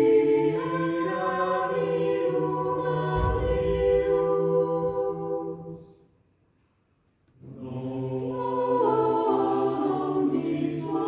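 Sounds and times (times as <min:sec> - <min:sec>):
vocal ensemble singing a cappella: 0:00.0 - 0:06.1, 0:07.4 - 0:11.0.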